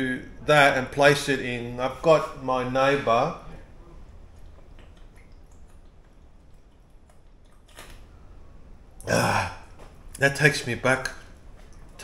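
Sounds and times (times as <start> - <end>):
man gulping and swallowing milk: 3.7 - 10.2.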